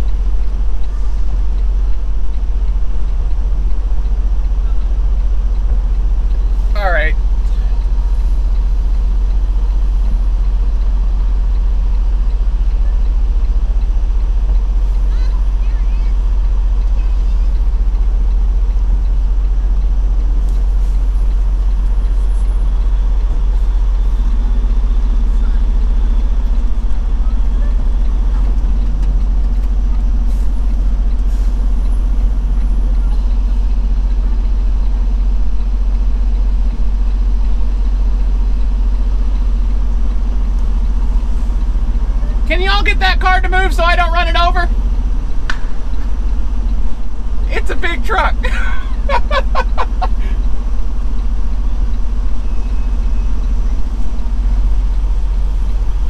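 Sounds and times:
diesel truck engine hum: 0.0s - 56.0s.

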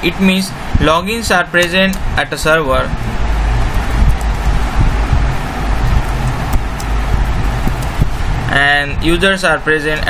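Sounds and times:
low rumble: 2.0s - 8.6s.

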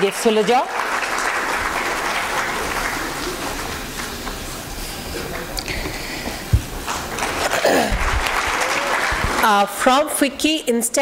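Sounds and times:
audience applauding: 0.0s - 4.6s, 6.7s - 10.0s.

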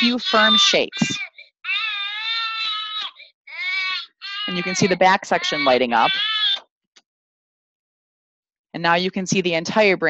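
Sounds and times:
recorded infant crying: 0.0s - 6.6s.

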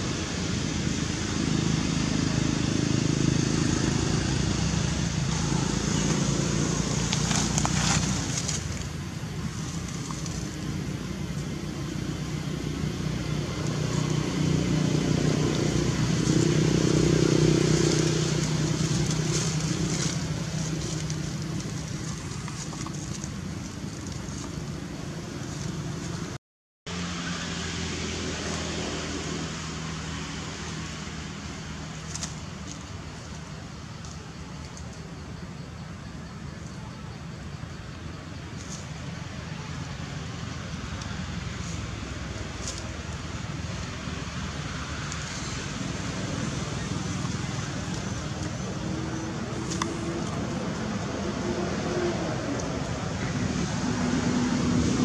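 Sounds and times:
distant traffic rumble: 0.0s - 55.0s
rustling in dry leaves: 0.0s - 55.0s.

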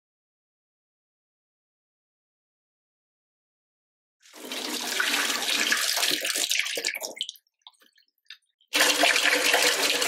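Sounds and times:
water pouring into steel sink: 4.2s - 8.0s, 8.7s - 10.0s
water dripping: 5.3s - 10.0s.

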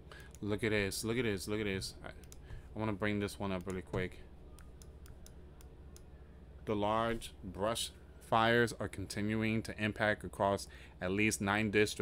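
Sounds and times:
low electrical hum: 0.0s - 12.0s
computer control clicks: 2.2s - 2.4s, 3.5s - 6.1s.

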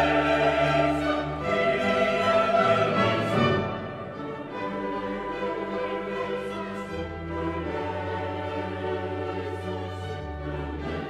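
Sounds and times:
choir and orchestra: 0.0s - 11.0s.

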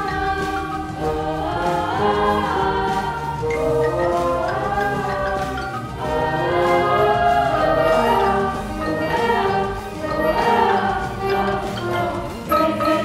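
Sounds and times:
ensemble holding long chords: 0.0s - 13.0s.

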